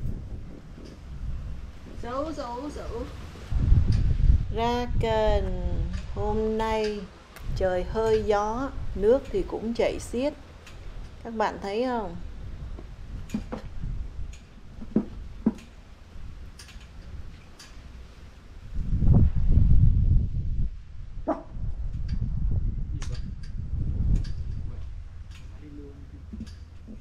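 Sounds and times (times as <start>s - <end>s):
wind buffeting microphone: 0.0s - 27.0s.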